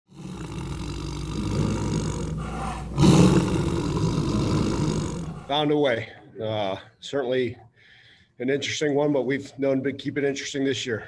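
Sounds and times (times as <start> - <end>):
tiger roar: 0.1 - 5.7.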